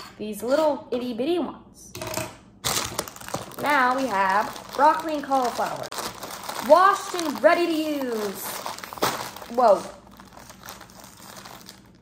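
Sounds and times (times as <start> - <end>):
plastic bag crinkling: 2.6 - 12.0.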